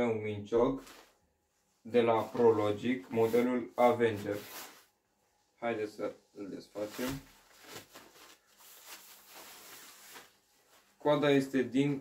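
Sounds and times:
fabric sleeve rustling: 0.8 - 5.0, 6.6 - 12.0.

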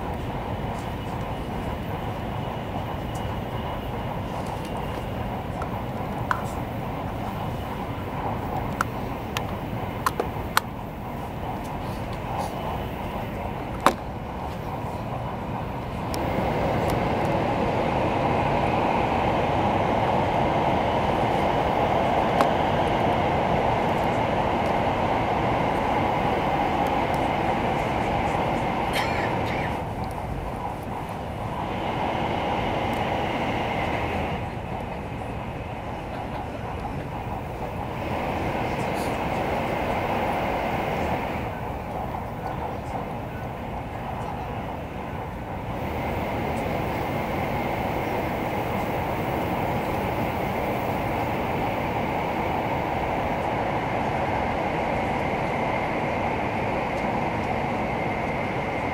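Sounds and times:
train cabin rumble: 0.0 - 58.9.

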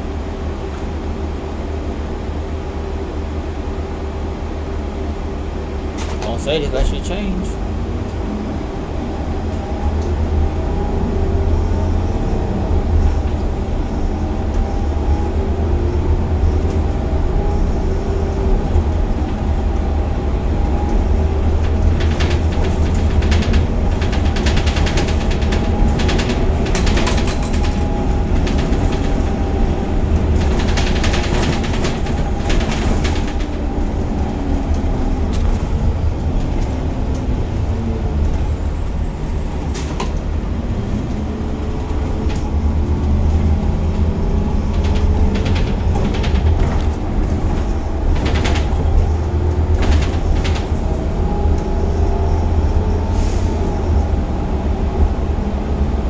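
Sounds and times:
bus engine and road rumble: 0.0 - 56.0
rattling and clicking: 20.4 - 37.6, 39.8 - 51.7.

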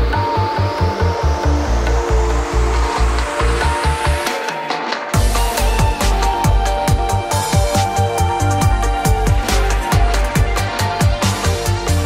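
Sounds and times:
pulsing synth bass line: 0.0 - 4.3, 5.2 - 12.0
held synth notes: 0.0 - 12.0.

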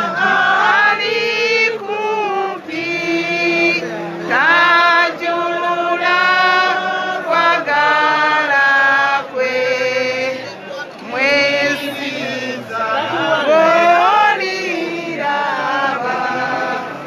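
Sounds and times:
voices singing a chant: 0.0 - 17.0.

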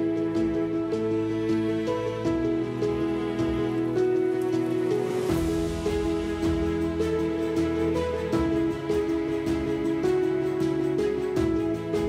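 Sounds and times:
soft instrumental music: 0.0 - 12.0.

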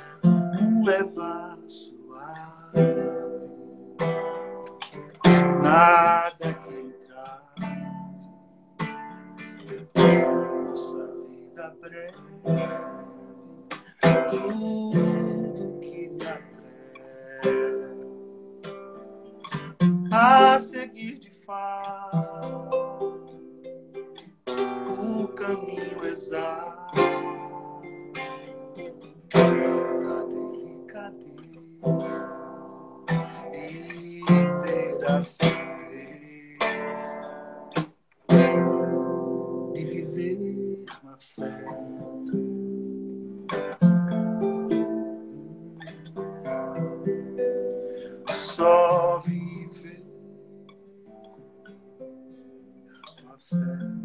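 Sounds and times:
man singing: 0.0 - 3.9, 5.2 - 8.3, 10.0 - 18.4, 20.1 - 23.4, 24.5 - 37.7, 39.6 - 42.5, 44.4 - 50.7, 53.0 - 54.0
acoustic guitar strumming: 0.0 - 54.0.

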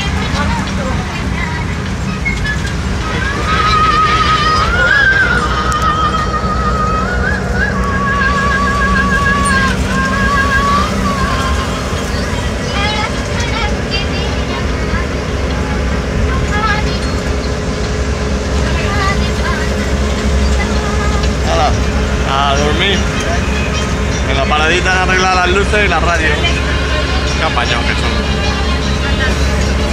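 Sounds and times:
bus engine: 0.0 - 29.9
road rumble: 0.0 - 29.9
voices: 0.0 - 29.9.

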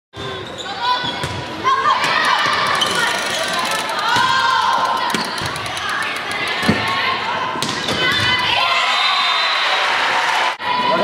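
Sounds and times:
players shouting: 1.6 - 11.0.

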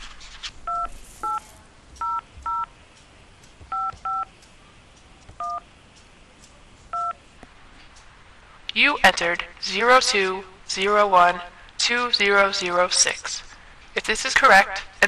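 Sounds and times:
telephone keypad two-tone beeps: 3.7 - 4.3, 7.0 - 7.2.

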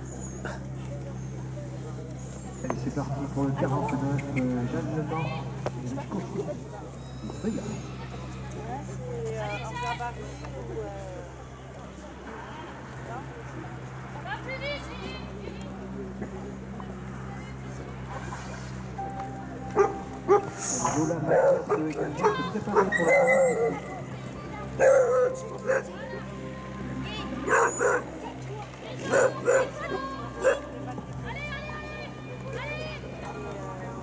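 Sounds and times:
dog whimpering: 22.2 - 23.8.

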